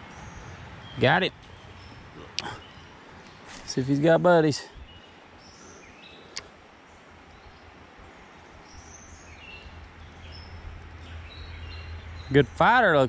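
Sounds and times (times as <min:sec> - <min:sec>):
creek hiss: 0:00.0 - 0:11.8.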